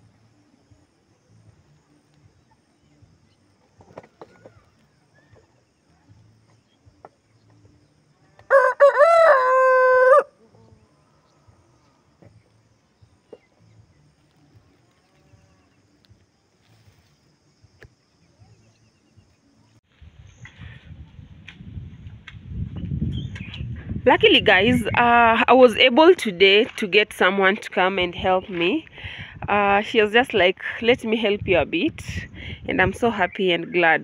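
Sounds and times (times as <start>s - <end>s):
rooster crowing: 8.4s - 10.4s
faint ticks: 14.2s - 16.3s
low rumbling noise: 19.8s - 25.5s.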